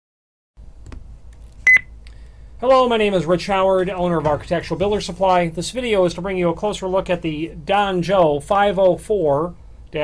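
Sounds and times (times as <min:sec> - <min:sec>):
low steady hum: 0:00.6 - 0:10.0.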